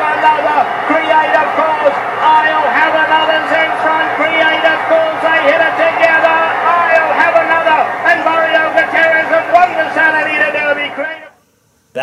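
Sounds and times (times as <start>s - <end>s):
excited race commentary: 0.0s - 11.3s.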